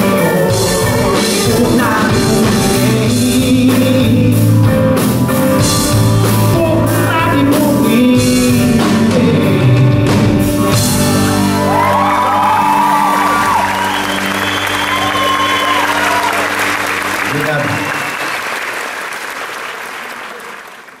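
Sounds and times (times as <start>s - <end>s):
live band final chord: 0.0s - 18.2s
audience applauding and cheering: 10.9s - 21.0s.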